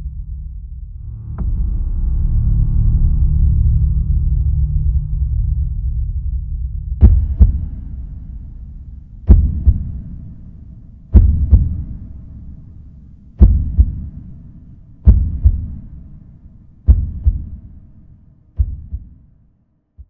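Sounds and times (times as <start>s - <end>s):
low drone: 0.0s - 18.4s
heartbeat double thump: 7.0s - 8.6s, 9.2s - 10.3s, 11.1s - 12.2s, 13.4s - 14.3s, 15.0s - 16.0s, 16.9s - 17.8s, 18.6s - 19.3s.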